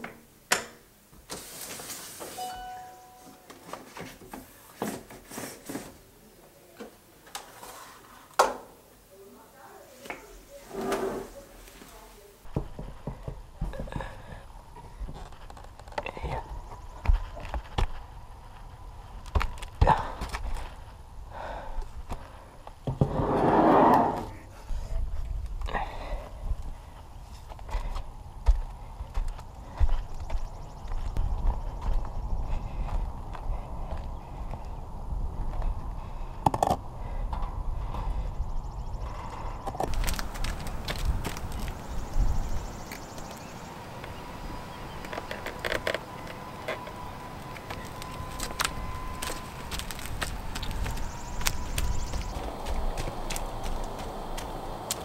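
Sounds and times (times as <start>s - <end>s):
wind rumble on microphone: 20.4s - 43.6s, 47.7s - 55.0s.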